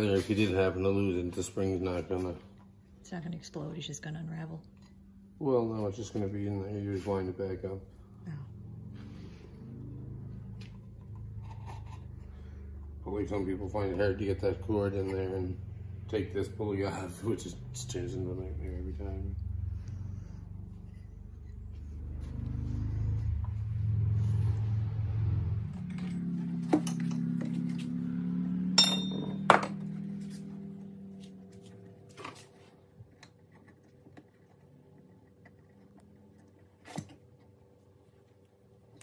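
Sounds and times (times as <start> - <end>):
low rumble: 5.4 - 30.8
clicks and metal clinks: 28.8 - 29.8.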